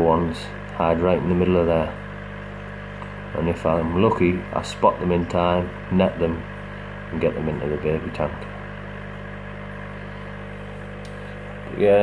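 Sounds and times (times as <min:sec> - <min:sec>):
aquarium air pump humming: 0:00.0 - 0:12.0.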